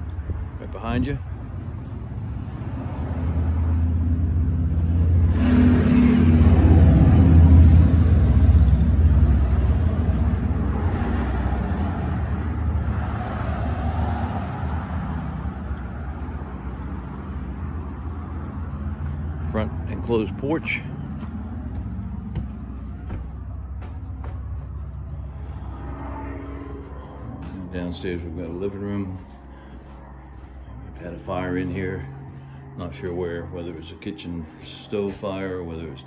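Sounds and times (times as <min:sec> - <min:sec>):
pickup truck driving by: 0:02.5 - 0:28.3
freight train rumbling past: 0:04.8 - 0:18.7.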